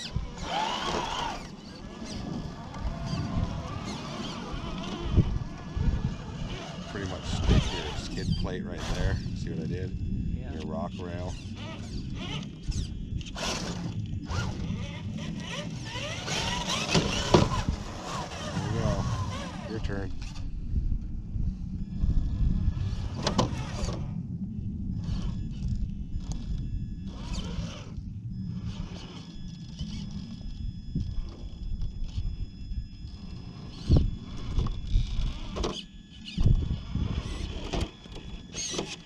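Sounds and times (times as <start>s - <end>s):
electric motor whining: 0.0s - 20.6s, 21.6s - 39.0s.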